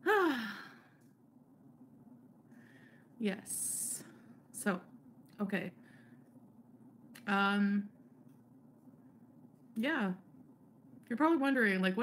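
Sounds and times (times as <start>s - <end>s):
woman sighing: 0.0s - 1.0s.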